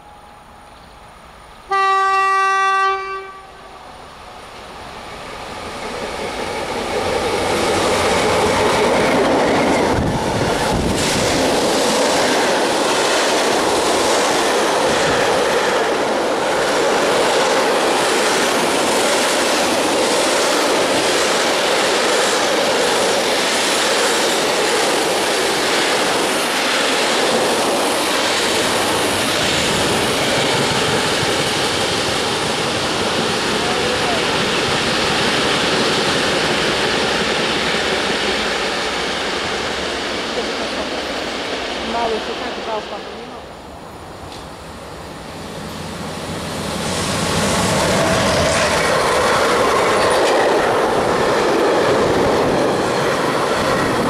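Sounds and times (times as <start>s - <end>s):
locomotive horn blast: 1.7s - 3.6s.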